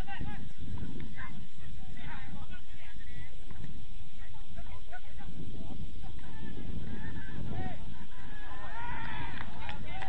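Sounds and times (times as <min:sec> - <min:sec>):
wind rumble on microphone: 0:00.0 - 0:10.0
distant players shouting: 0:06.0 - 0:10.0.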